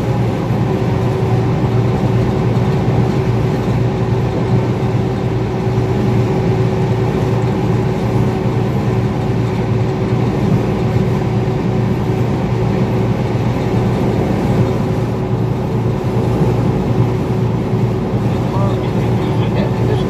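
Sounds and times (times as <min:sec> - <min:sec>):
engine and tyre drone: 0:00.0 - 0:20.0.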